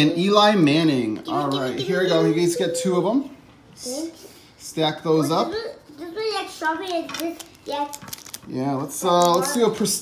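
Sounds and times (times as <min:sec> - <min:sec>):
young children talking: 0:01.2 - 0:04.2.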